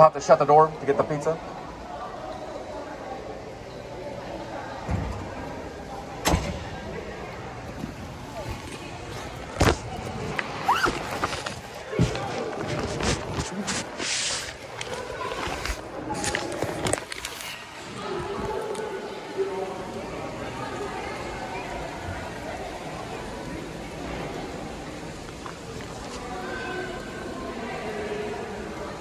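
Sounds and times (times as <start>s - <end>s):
bag rustling: 8.3s - 17.6s.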